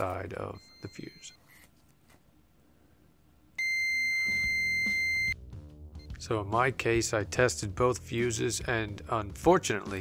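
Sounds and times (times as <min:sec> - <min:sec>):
multimeter continuity beep: 0:00.4 - 0:01.6, 0:03.6 - 0:05.4.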